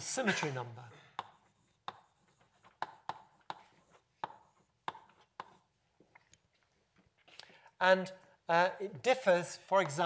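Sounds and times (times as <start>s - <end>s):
chalk tapping on blackboard: 1.2s - 5.7s.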